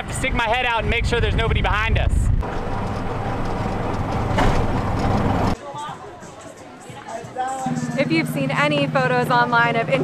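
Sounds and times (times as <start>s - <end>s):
road noise rushing: 2.3s - 5.6s.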